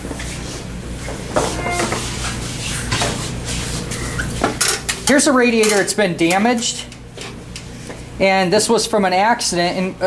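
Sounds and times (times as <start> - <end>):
steady low hum: 0.6 - 4.2.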